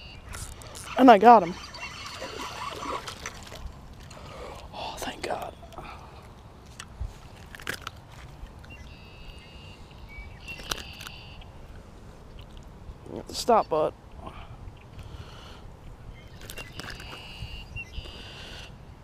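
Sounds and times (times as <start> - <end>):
water splash: 0.8 - 4.1
fishing tackle handling noise: 5.3 - 8.8, 10.5 - 11.2.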